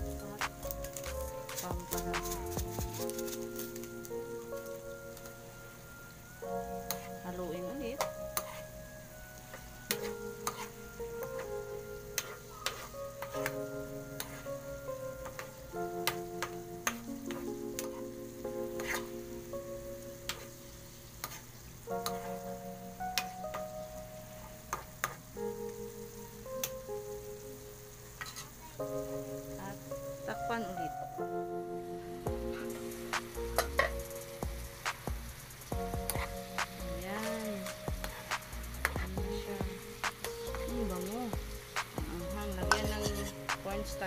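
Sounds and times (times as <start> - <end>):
background music with held notes: 0.0 - 44.0
food sizzling in a pan: 0.0 - 44.0
spatula scraping a pan: 6.9 - 7.2, 8.0 - 8.8, 9.9 - 14.6, 17.2 - 19.2, 21.2 - 22.5, 28.2 - 28.6, 42.6 - 43.5.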